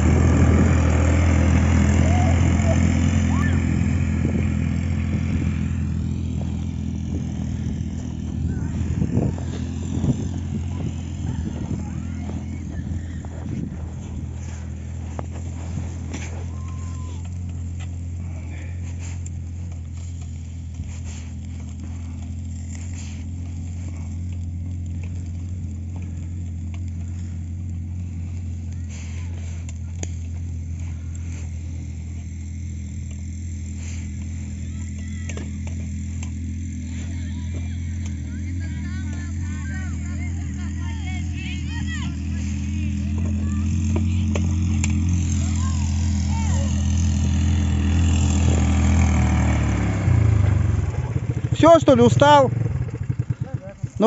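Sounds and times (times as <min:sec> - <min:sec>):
small engine humming: 0:00.0 - 0:54.0.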